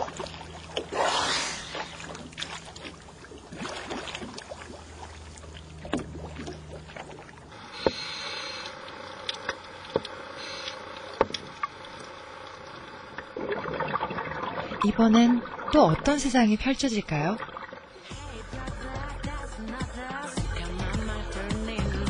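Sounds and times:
water splashing around swimmers: 0.0 - 18.2
low steady hum: 0.0 - 19.8
underwater hiss: 0.9 - 2.3, 7.5 - 13.2.

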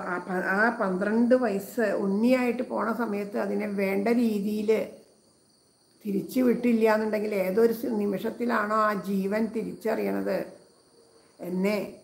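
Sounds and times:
woman speaking: 0.0 - 4.9, 6.0 - 10.5, 11.4 - 12.0.

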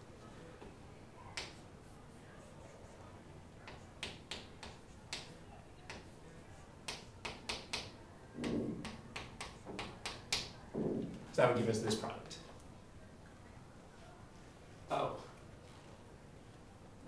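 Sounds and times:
chalk tapping and scraping: 3.6 - 10.6.

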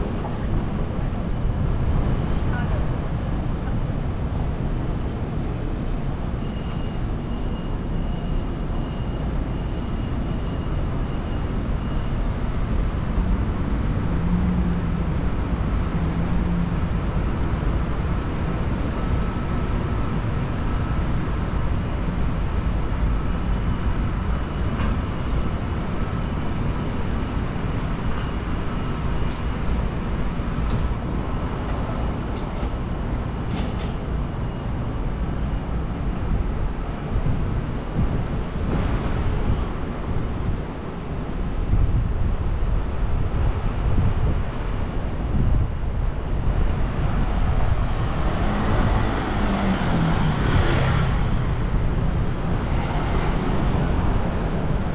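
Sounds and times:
rumble of passing vehicles: 0.0 - 54.9.

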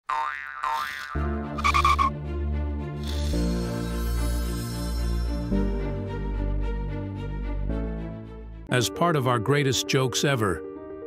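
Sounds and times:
cartoon boing effects: 0.1 - 2.1.

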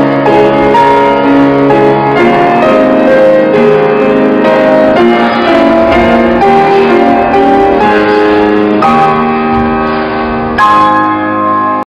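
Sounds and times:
piano playing held chords: 0.0 - 11.9.

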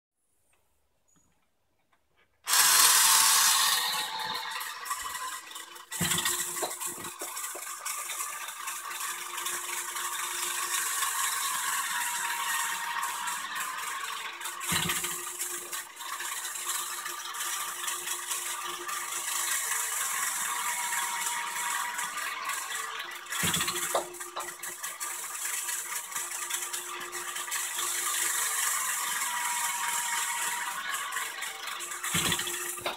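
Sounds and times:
toy machine motor whirring: 2.4 - 32.9.

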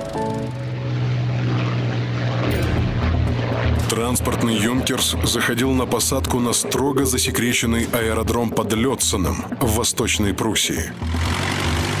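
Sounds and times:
music: 0.0 - 1.1, 4.4 - 12.0
propeller engines droning: 0.0 - 12.0.

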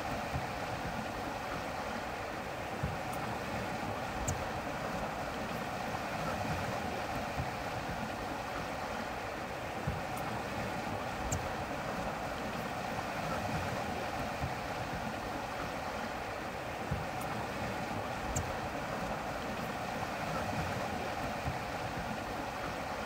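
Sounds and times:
water rushing past boat: 0.0 - 23.0
faint high ticks: 4.2 - 4.5, 11.2 - 11.5, 18.3 - 18.6.

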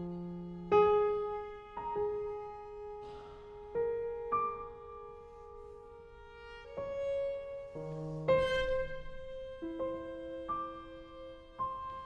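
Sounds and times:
slow piano notes: 0.0 - 12.0.

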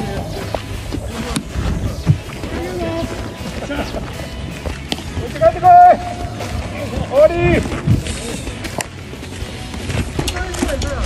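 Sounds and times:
players shouting long calls: 5.1 - 7.8.

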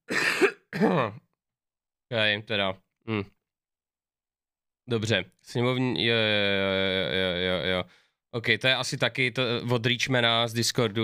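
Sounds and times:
man clearing his throat: 0.1 - 1.2.

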